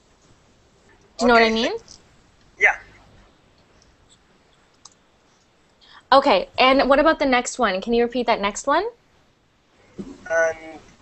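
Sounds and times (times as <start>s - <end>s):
person saying yeah on video call: 1.2s - 1.8s, 2.6s - 2.8s
faint clicks: 3.5s - 5.8s.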